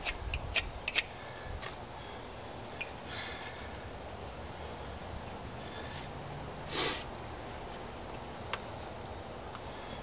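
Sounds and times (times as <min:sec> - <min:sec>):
person sniffing: 0:05.8 - 0:07.1.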